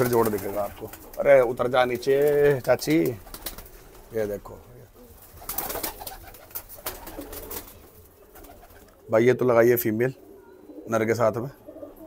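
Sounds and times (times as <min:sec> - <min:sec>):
pigeons cooing: 0:00.0 - 0:12.0.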